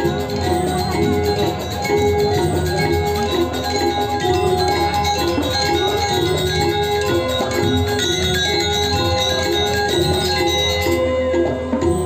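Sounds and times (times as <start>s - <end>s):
gamelan metallophones and gongs: 0.0s - 12.0s.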